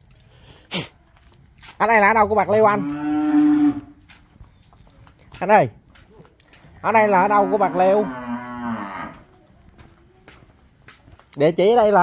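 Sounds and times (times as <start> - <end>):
cow mooing: 2.6 - 3.9, 7.2 - 9.2.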